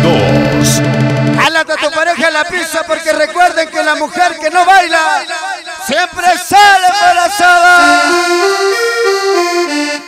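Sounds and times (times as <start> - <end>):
person's voice: 0.0 - 8.3
accordion melody over cumbia: 0.0 - 10.0.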